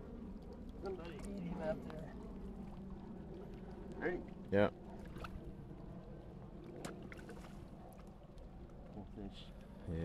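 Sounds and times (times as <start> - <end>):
light rain on lake surface: 0.0 - 10.0
low wind rumble: 0.0 - 10.0.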